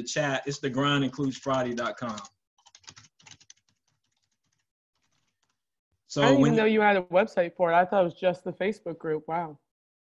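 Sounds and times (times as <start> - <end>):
computer keyboard typing: 0.5 - 5.6.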